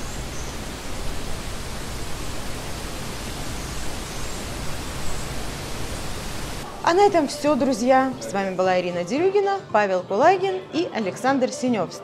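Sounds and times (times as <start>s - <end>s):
steady rushing noise: 0.0s - 6.8s.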